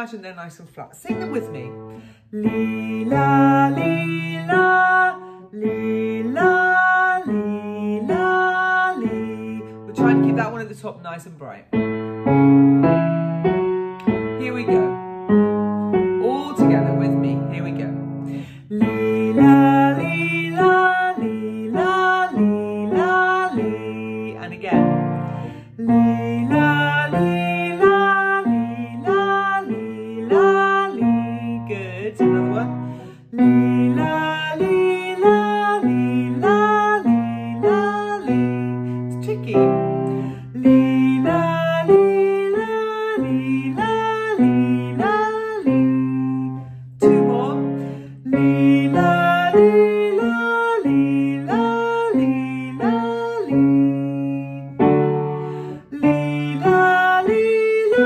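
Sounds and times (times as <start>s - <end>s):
woman singing vocal exercise: 0.8s - 11.6s, 16.2s - 58.0s
instrumental accompaniment: 11.7s - 42.3s.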